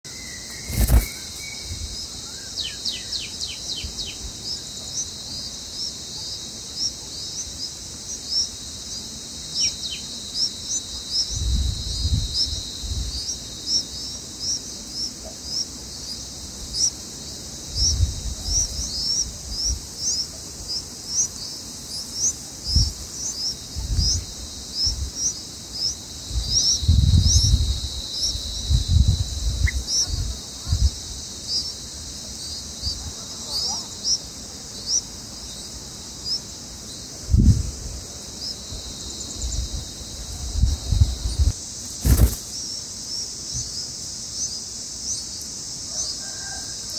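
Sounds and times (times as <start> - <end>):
high insect drone: 0.0 - 46.9
nestlings chirping: 0.1 - 28.6, 29.4 - 37.0.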